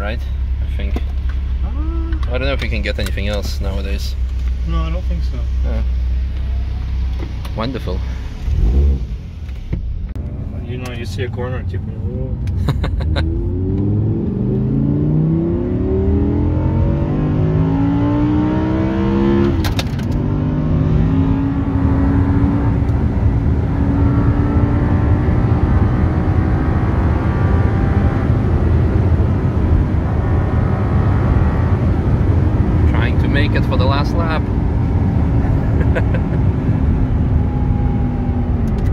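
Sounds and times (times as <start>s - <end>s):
road and tyre rumble: 0.0s - 38.9s
car engine revving: 0.7s - 38.9s.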